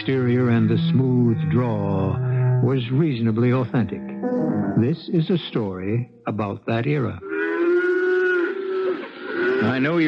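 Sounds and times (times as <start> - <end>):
cow mooing: 0.0 - 5.0.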